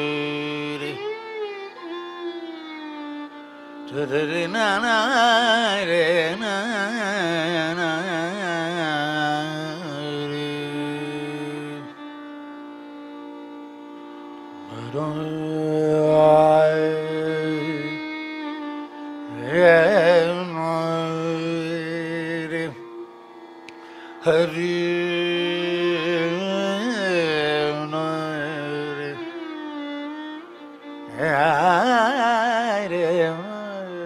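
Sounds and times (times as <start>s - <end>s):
tanpura drone: 0.0s - 34.0s
violin melody: 0.0s - 34.0s
person singing a long note: 24.2s - 29.2s.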